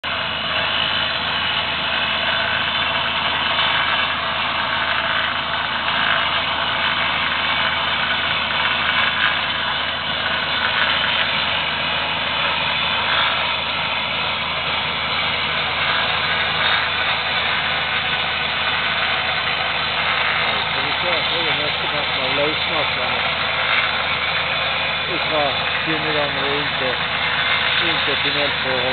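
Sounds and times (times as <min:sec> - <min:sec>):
machine engines running: 0:00.0 - 0:28.9
rock drill boring: 0:00.0 - 0:28.9.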